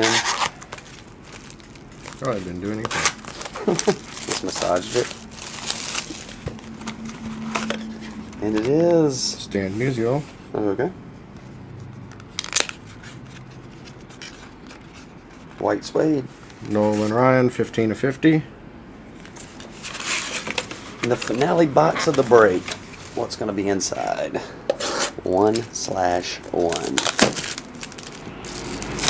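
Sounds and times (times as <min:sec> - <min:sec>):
shrink-wrap tearing: 0:00.0 - 0:08.8, 0:12.1 - 0:14.9, 0:25.4 - 0:29.0
card packaging crackling: 0:00.0 - 0:09.2, 0:11.9 - 0:15.4, 0:25.4 - 0:29.0.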